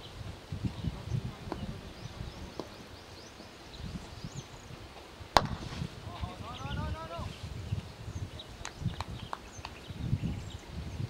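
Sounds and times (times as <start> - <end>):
cricket bat striking ball: 5.4 - 5.8.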